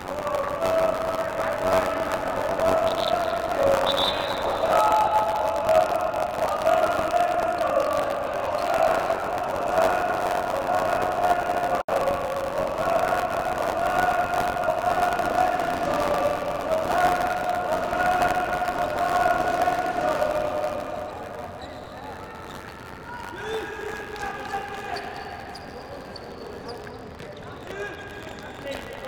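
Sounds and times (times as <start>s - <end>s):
arena crowd noise: 0.0s - 29.0s
crowd chanting in unison: 0.1s - 21.4s.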